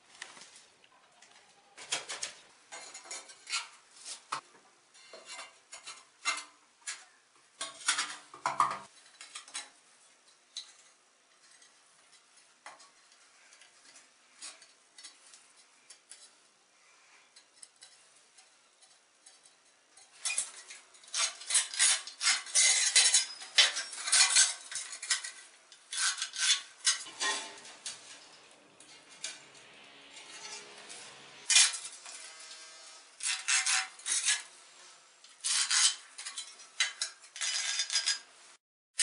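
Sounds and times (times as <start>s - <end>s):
file rasping on ceramic tile: 33.2s - 34.5s.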